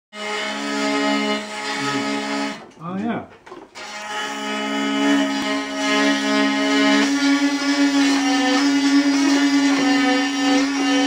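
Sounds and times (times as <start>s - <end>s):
hurdy-gurdy drone and melody: 0.2s - 2.7s, 3.8s - 11.0s.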